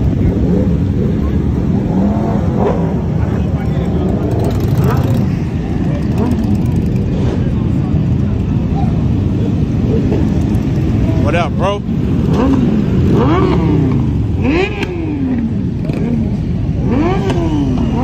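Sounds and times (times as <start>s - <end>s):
motorcycle engines running: 0.0s - 18.0s
motorcycle revving: 0.0s - 18.0s.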